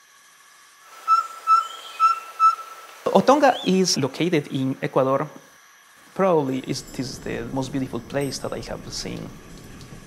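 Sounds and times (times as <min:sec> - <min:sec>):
soft steady hiss: 0:00.8 - 0:10.0
bird whistled call: 0:01.0 - 0:02.8, 0:03.4 - 0:03.8.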